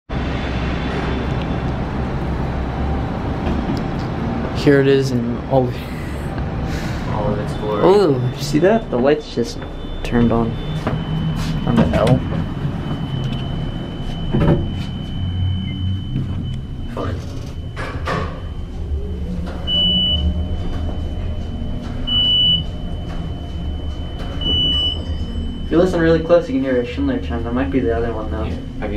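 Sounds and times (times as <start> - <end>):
low rumbling garage noise: 0.1 - 28.9
faint steady high tone: 7.2 - 28.9
short high beeps: 19.6 - 26.0.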